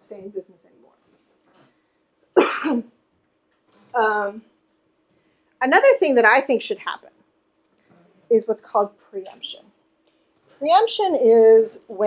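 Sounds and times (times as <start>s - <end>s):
woman coughing: 2.4s - 3.0s.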